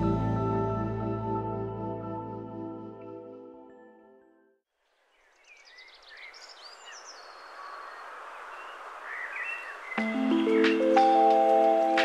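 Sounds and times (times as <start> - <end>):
music: 0.0 - 4.6, 10.0 - 12.0
small birds chirping: 4.9 - 11.3.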